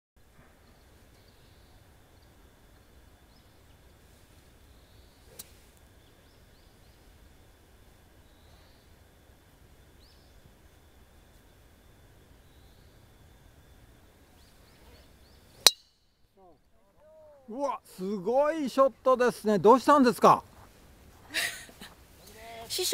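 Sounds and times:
golf club striking ball: 0:15.6 - 0:16.0.

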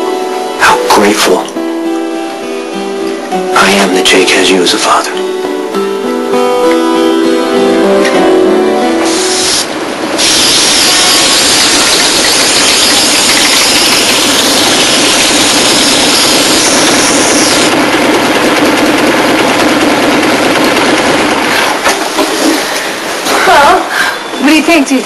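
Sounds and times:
motorcycle engine running: 0:10.2 - 0:22.7.

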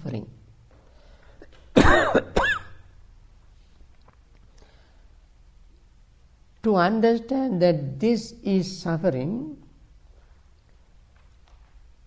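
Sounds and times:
man coughing: 0:01.7 - 0:02.8.

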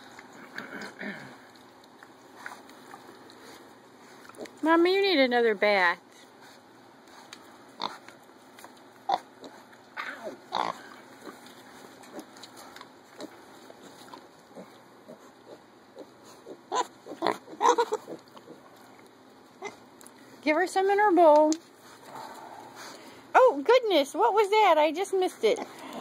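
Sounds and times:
pigs grunting: 0:00.3 - 0:01.5, 0:09.1 - 0:12.4, 0:13.2 - 0:18.7.

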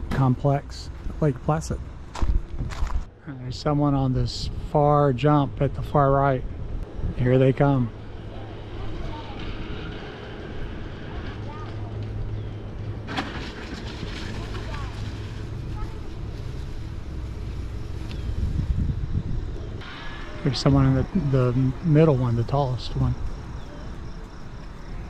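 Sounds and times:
steady low hum: 0:00.0 - 0:25.0
faint distant voices: 0:07.3 - 0:13.3.

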